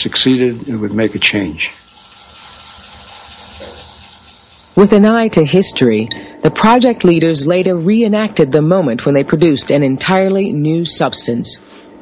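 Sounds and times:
steady hiss with faint hum: 0.0s - 12.0s.

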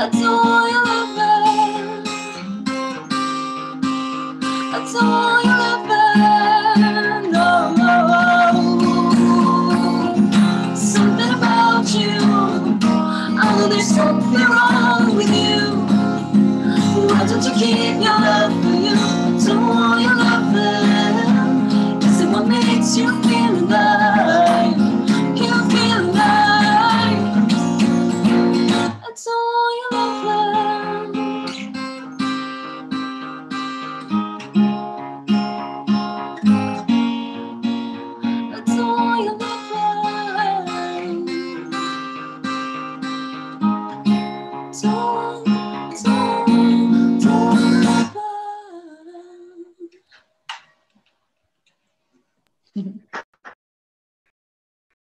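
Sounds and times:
acoustic guitar strumming: 0.0s - 29.0s, 29.9s - 48.2s
picked guitar passage: 0.1s - 29.1s, 29.9s - 48.2s
two voices singing: 4.8s - 27.7s, 38.6s - 42.0s, 44.8s - 50.0s.

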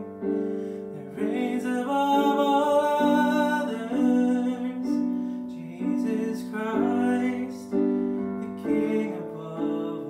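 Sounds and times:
digital piano chords: 0.0s - 10.0s.

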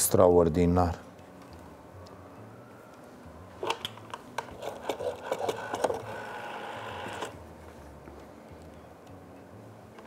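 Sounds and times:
rotary dial whirring: 4.4s - 7.4s.

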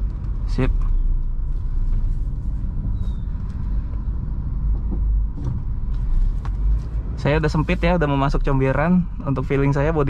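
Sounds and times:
car engine low rumble: 0.0s - 10.0s.

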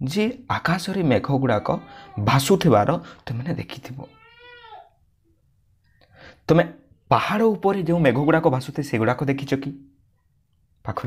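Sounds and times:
man speaking: 0.0s - 4.3s, 6.5s - 9.9s
cat meowing: 1.6s - 2.4s, 4.1s - 4.9s.

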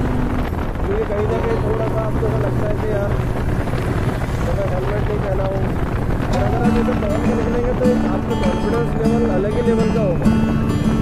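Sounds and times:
motorcycle engine running: 0.0s - 11.0s
wind noise on microphone: 0.0s - 11.0s.

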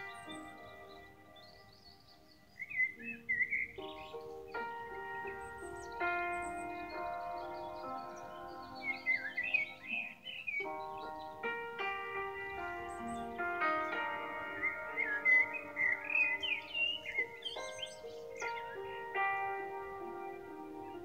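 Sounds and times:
bird chirps: 0.0s - 21.0s
soft keyboard chords: 0.0s - 21.0s.

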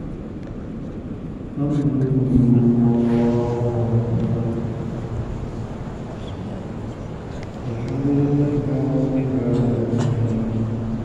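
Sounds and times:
man holding a long low note: 2.2s - 6.0s.

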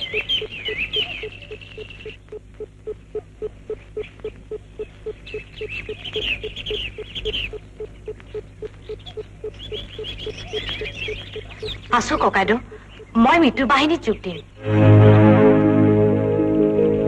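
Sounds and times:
rapid high-pitched chirping: 0.0s - 14.6s
low steady hum: 0.0s - 17.0s.

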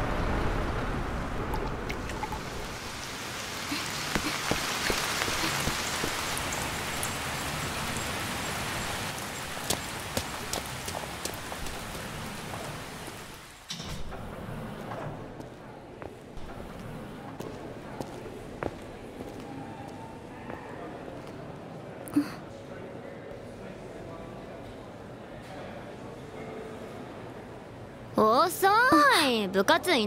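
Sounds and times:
heavy rain falling: 0.0s - 14.2s
drops ticking on hard surfaces: 9.2s - 12.7s.

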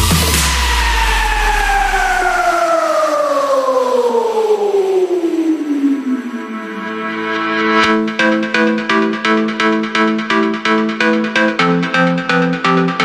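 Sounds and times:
deep bass: 0.0s - 13.0s
synth sweep falling in pitch: 0.0s - 13.0s.

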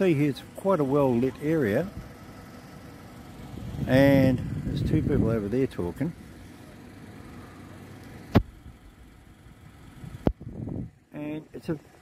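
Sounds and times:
engine idling: 0.0s - 12.0s
street background: 0.0s - 12.0s.

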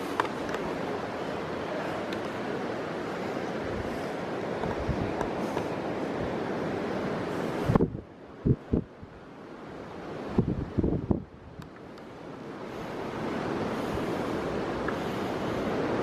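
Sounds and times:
wind buffeting microphone: 2.7s - 9.2s, 9.8s - 11.7s.

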